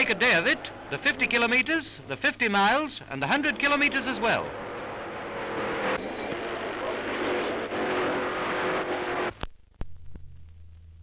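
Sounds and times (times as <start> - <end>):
faint hum: 0.0 - 11.0
racing car engine drone: 3.1 - 9.4.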